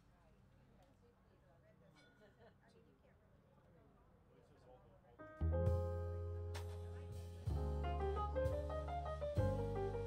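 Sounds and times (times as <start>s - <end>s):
faint distant talking: 0.0s - 8.7s.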